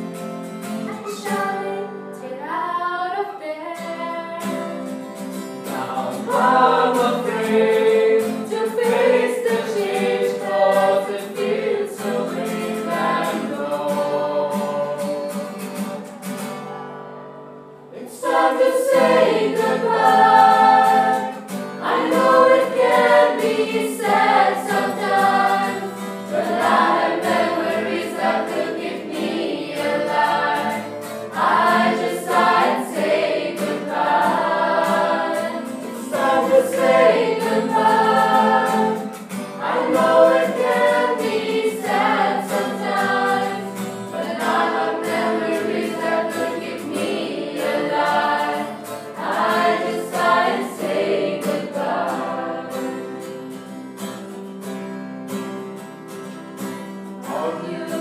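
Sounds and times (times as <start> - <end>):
choir singing: 0.9 - 4.8, 5.6 - 15.1, 17.9 - 53.4, 57.2 - 58.0.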